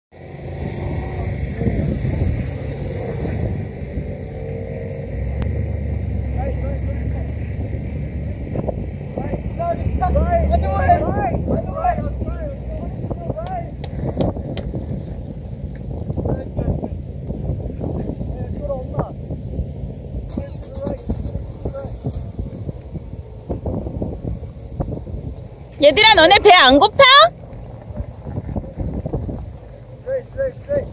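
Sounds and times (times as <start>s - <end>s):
wind buffeting microphone: 0.2s - 30.9s.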